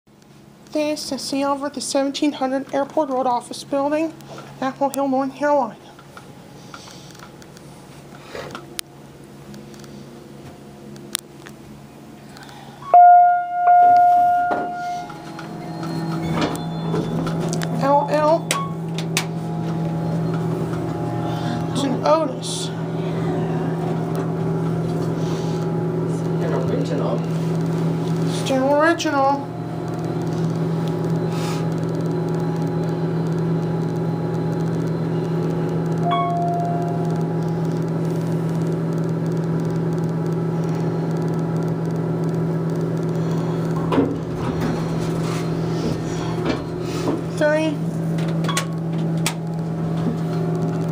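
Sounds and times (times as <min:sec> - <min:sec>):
steady low hum: 0:00.1 - 0:50.9
elevator arrival chime: 0:12.8 - 0:24.6, 0:36.0 - 0:37.4
elevator doors sliding open: 0:13.7 - 0:25.6, 0:43.8 - 0:47.4.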